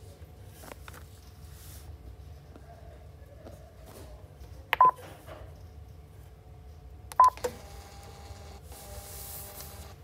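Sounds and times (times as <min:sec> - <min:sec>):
short device beeps: 0:07.2 - 0:07.4.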